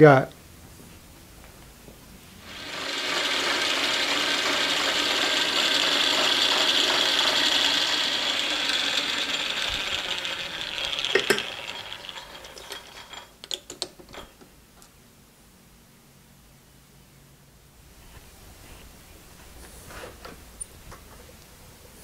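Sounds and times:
metal lathe whirring: 2.4s - 13.3s.

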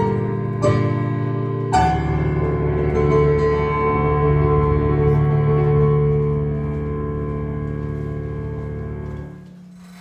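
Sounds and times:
stage piano chord: 0.0s - 10.0s.

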